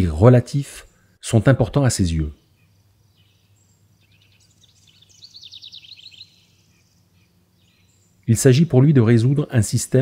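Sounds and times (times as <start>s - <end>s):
low steady hum: 0.0s - 10.0s
bird trilling chirps: 2.2s - 9.5s.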